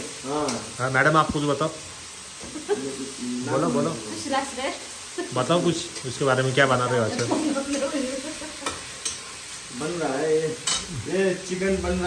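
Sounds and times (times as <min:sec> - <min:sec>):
vegetables sizzling: 0:00.0 - 0:12.0
spatula scraping a pan: 0:08.6 - 0:09.6.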